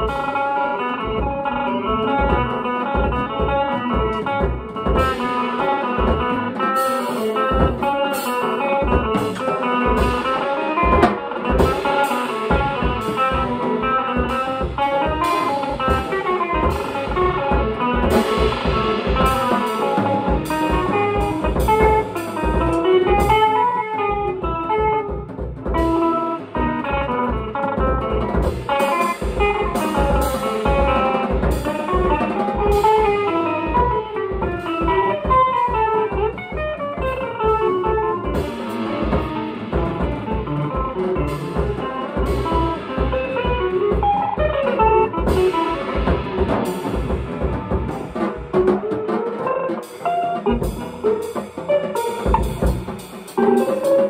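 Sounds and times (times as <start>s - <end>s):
drums and cymbals: 0.0s - 54.0s
electric guitar playing: 0.0s - 54.0s.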